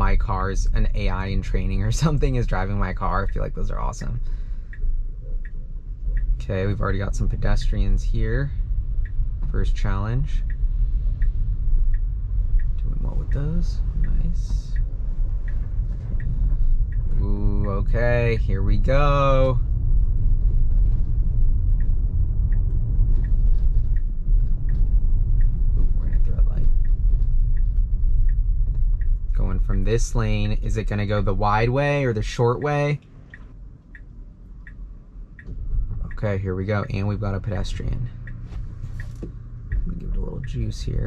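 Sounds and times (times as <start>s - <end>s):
car cabin low hum: 0.0s - 41.0s
road and tyre rumble: 0.0s - 41.0s
turn signal ticking: 0.0s - 41.0s.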